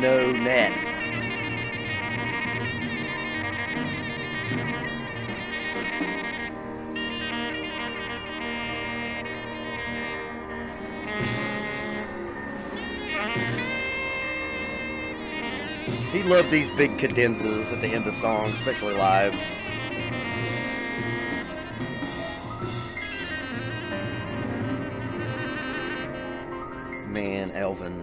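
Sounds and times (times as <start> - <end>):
drums: 0.0 - 6.9, 15.3 - 26.2
soprano saxophone solo: 0.0 - 27.4
piano: 0.0 - 28.0.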